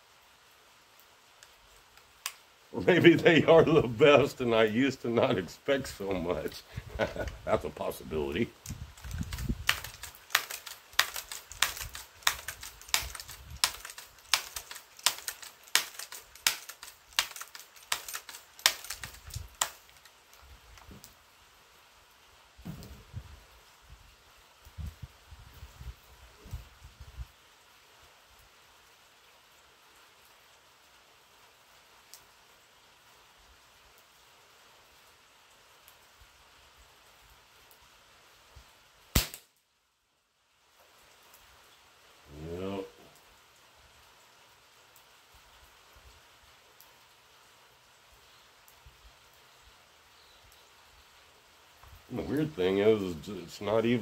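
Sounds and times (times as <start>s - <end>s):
air rifle clicks: 8.7s - 20.2s, 39.2s - 39.5s
air rifle shot: 39.2s - 39.5s.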